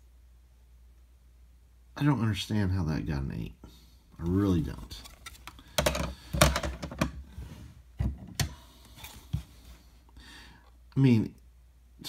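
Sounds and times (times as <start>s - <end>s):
plastic slabs clacking together: 5.3s - 7.2s.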